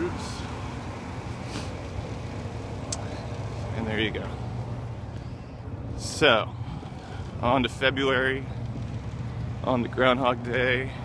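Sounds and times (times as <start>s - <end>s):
wind and riding noise: 0.0s - 11.0s.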